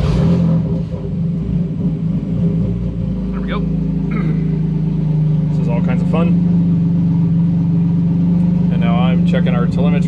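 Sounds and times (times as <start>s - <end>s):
race car engine idling: 0.6s - 10.0s.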